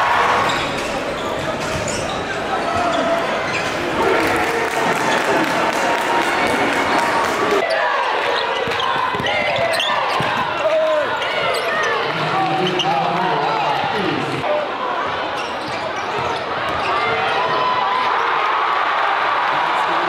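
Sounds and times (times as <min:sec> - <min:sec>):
players and spectators calling out: 0:00.0 - 0:20.0.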